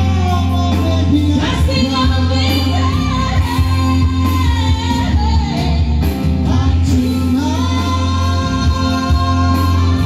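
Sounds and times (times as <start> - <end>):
electronic keyboard accompaniment: 0.0 - 10.0
woman and man singing duet: 0.0 - 10.0.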